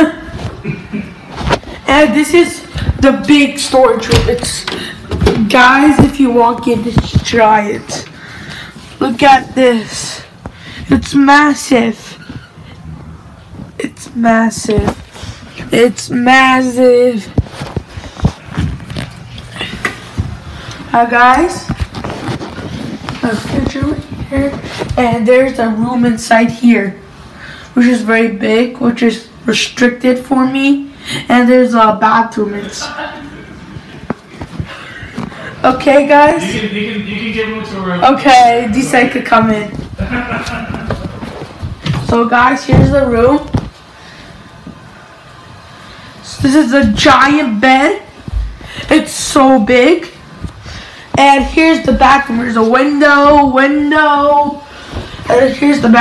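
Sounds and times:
low thumps: 0:39.4 - 0:43.8.

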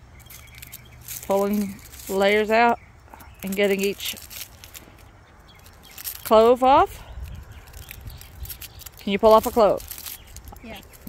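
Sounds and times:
garlic skin crackling: 0:00.2 - 0:11.0.

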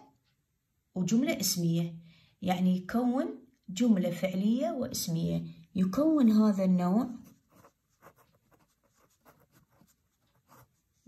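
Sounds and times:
pen scratching on paper: 0:07.2 - 0:11.0.

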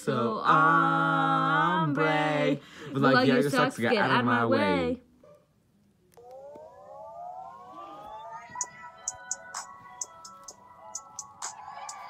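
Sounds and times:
siren-like rising stacked tones: 0:06.2 - 0:12.0.

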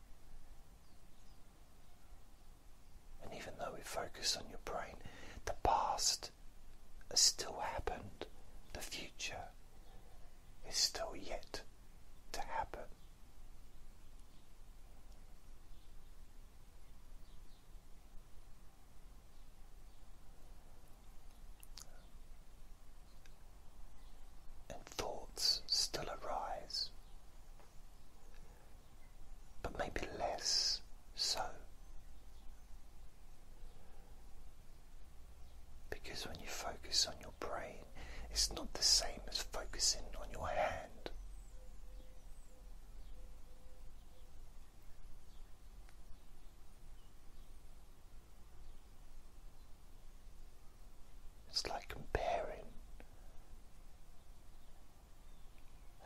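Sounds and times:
man whispering: 0:03.2 - 0:06.4, 0:07.0 - 0:10.0, 0:10.6 - 0:13.1, 0:21.7 - 0:22.1, 0:24.6 - 0:27.0, 0:29.6 - 0:31.9, 0:35.9 - 0:41.2, 0:51.5 - 0:53.3.

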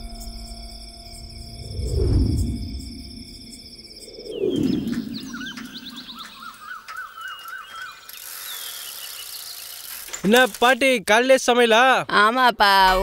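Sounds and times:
deep falling whoosh: 0:00.0 - 0:06.2
high insect hiss: 0:00.0 - 0:10.8
birds chirping: 0:03.0 - 0:09.9.

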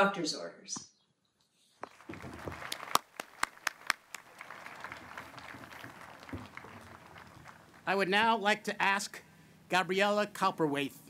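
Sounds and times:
crowd applause: 0:01.9 - 0:08.1.

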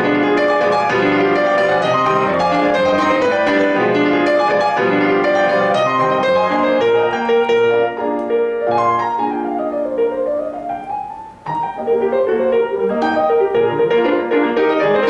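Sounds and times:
grand piano playing: 0:00.0 - 0:15.0.

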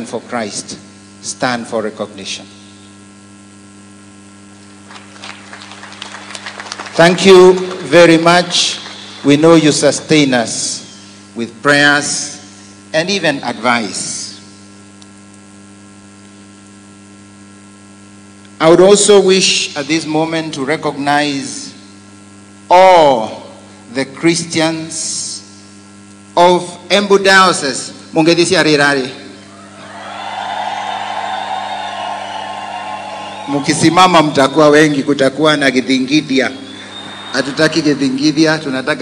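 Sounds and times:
electrical mains hum: 0:00.0 - 0:39.0
large crowd cheering: 0:04.9 - 0:09.6, 0:29.5 - 0:35.2, 0:36.6 - 0:39.0.

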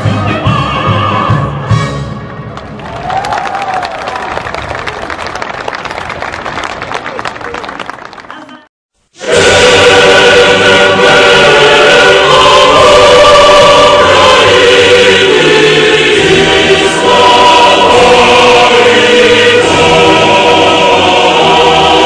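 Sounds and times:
loud choral music: 0:00.0 - 0:02.6, 0:09.1 - 0:22.0.

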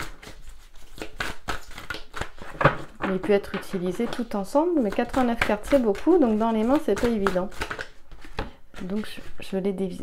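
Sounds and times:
cards being shuffled: 0:00.0 - 0:09.4.

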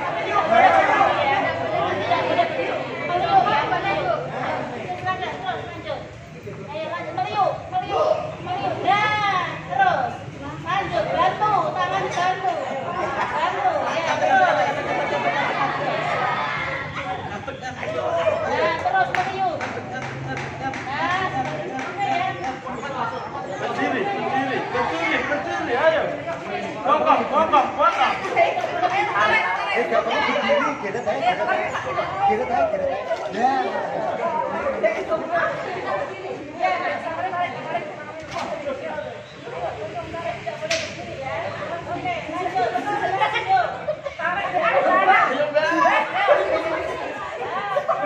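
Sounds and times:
group chatter: 0:00.0 - 0:48.0.

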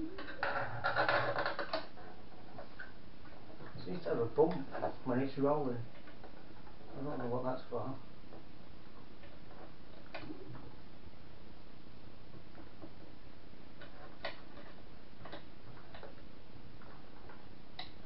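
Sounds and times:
steady background hiss: 0:00.0 - 0:18.0
hands clicking and tapping parts: 0:13.8 - 0:18.0.

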